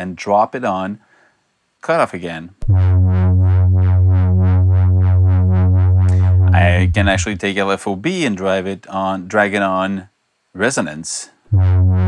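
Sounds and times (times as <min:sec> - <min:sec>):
pulsing synthesizer pad: 0:02.6 - 0:07.4.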